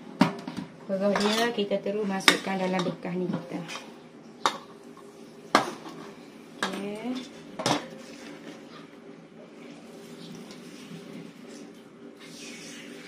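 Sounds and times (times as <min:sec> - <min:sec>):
steel kitchenware clanking: 0:01.0 - 0:04.7.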